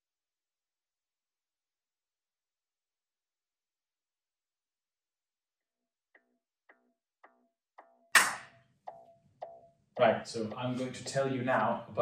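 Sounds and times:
loud percussive hit: 0:08.1 - 0:08.6.

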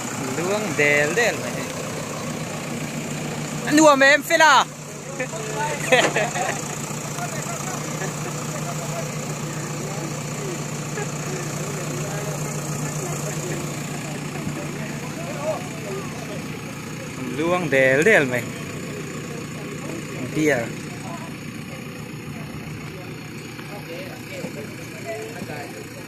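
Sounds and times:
people talking: 0:00.0 - 0:01.8, 0:03.6 - 0:26.0
diesel engine idling: 0:00.0 - 0:26.0.

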